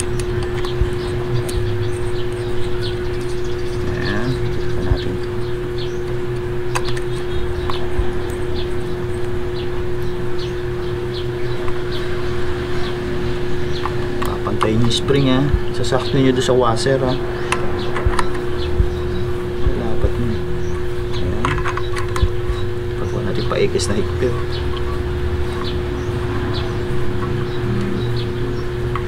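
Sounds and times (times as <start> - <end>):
machine hum: 0.0 - 29.0.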